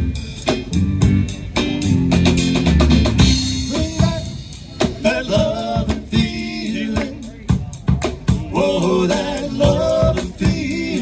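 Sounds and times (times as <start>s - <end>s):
drum hits: 0.0s - 11.0s
rock band playing live: 0.0s - 11.0s.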